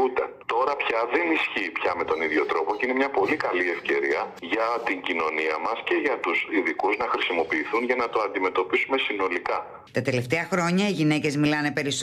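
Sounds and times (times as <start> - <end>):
man talking: 0.0 - 9.8.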